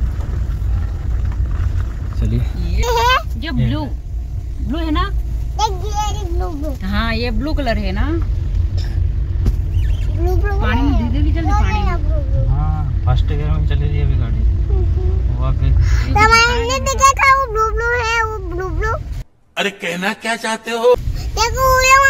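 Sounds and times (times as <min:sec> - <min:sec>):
car cabin rumble on rough track: 0:00.0 - 0:19.2, 0:21.0 - 0:22.0
child talking: 0:02.8 - 0:03.7, 0:05.6 - 0:06.9, 0:10.1 - 0:12.5, 0:14.7 - 0:15.3, 0:15.9 - 0:19.1, 0:21.4 - 0:22.0.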